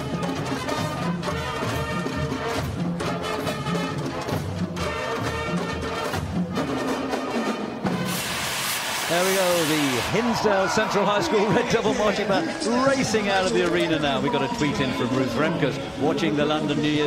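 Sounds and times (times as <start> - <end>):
brass instruments playing: 0.0 - 10.3.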